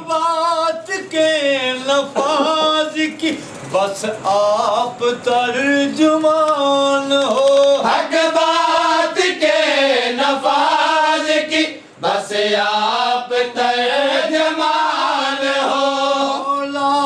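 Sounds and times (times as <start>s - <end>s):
men chanting a mourning lament: 0.0s - 17.0s.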